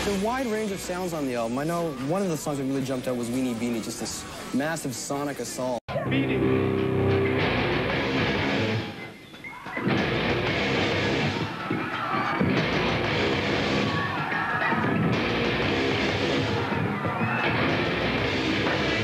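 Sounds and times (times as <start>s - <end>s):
drums: 0.0s - 4.6s, 6.0s - 19.0s
distorted electric guitars: 5.9s - 19.0s.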